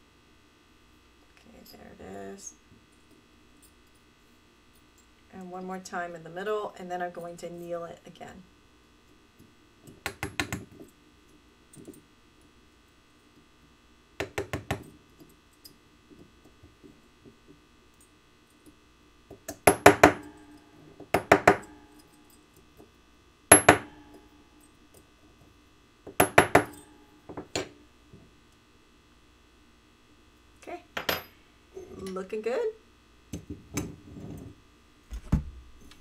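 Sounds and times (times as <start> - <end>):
hammer tapping metal punch: 19.4 - 20.4, 21.1 - 22.0, 23.5 - 24.2, 26.1 - 27.7.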